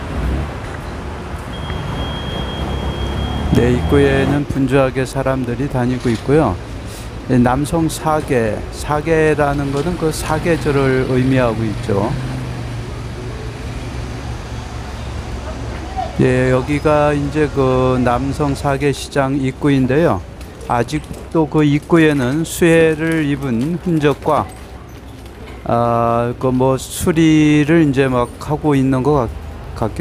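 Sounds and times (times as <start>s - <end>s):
city noise: 0.0s - 30.0s
low traffic rumble: 0.0s - 30.0s.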